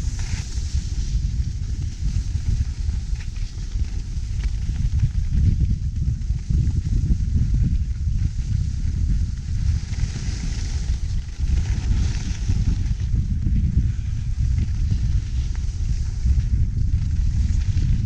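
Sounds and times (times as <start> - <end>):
skis sliding over snow: 0.0 - 18.0
wind buffeting microphone: 0.0 - 18.0.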